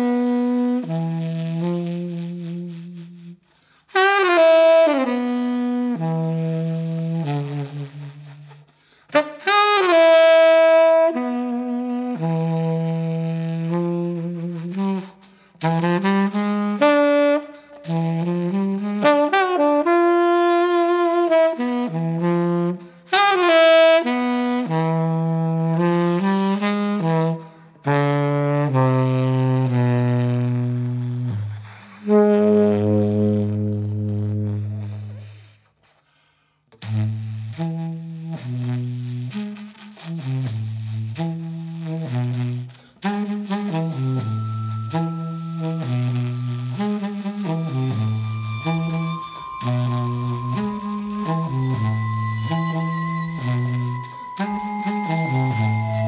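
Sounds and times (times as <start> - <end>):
jazz tenor saxophone: 0.0 - 56.0.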